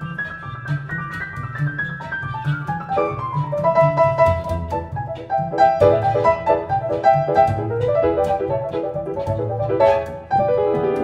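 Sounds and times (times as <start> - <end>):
piano chords: 0.0 - 11.0
plucked double bass: 0.0 - 11.0
violin fiddle tune: 0.0 - 11.0.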